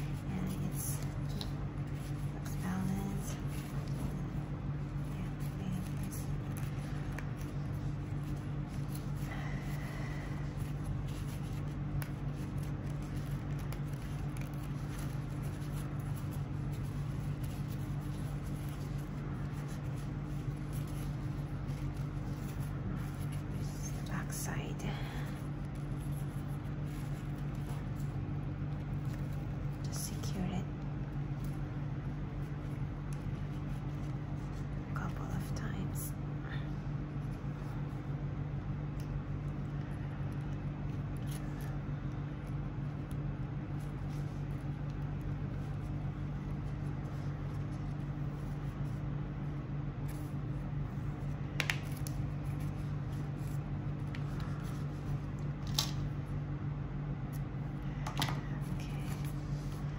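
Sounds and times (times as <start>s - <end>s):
ribbon and thread rustling: 0.0s - 36.0s, 36.8s - 56.4s, 57.2s - 59.9s
low hum: 0.0s - 59.9s.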